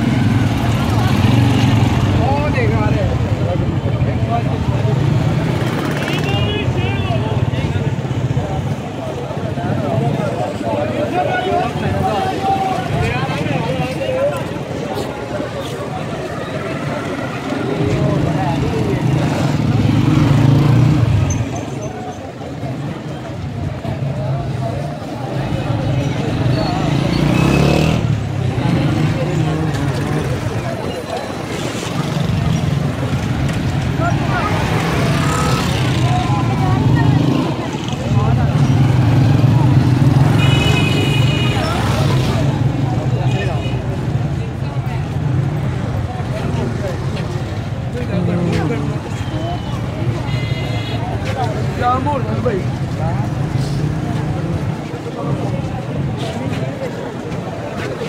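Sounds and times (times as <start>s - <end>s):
chatter of many people: 0.0s - 58.0s
motorcycle engines passing: 0.0s - 58.0s.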